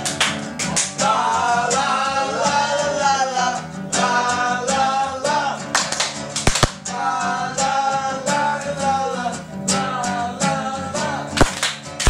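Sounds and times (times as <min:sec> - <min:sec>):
acoustic guitar strumming: 0:00.0 - 0:12.0
person singing: 0:01.0 - 0:05.7, 0:06.8 - 0:11.6
loud sharp slap: 0:05.8 - 0:06.8, 0:11.4 - 0:11.8.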